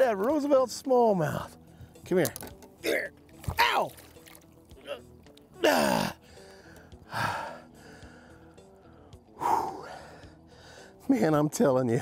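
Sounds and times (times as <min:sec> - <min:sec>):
faint background music: 0:00.0 - 0:12.0
man gasping and crying out: 0:05.6 - 0:08.4.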